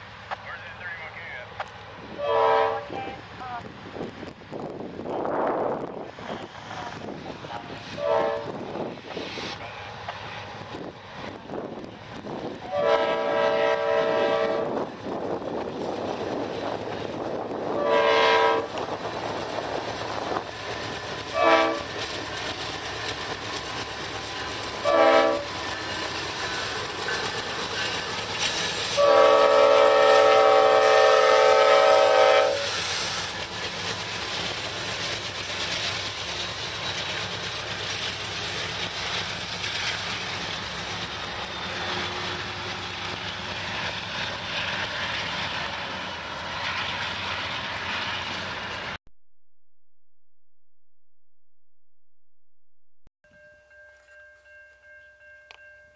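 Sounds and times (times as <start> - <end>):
locomotive engine noise: 0.0 - 49.0
locomotive air horn blasts: 2.2 - 3.1, 8.0 - 8.6, 12.7 - 14.8, 17.7 - 18.8, 21.4 - 21.9, 24.8 - 25.5, 28.9 - 32.8.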